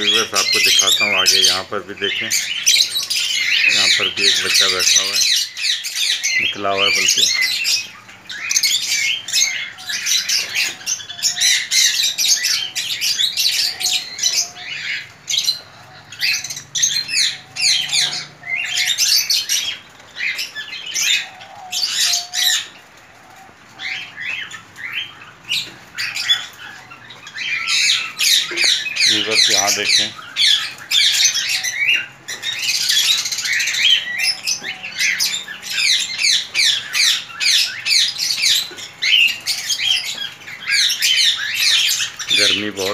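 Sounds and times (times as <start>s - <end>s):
birds chirping and squawking: 0.0s - 42.9s.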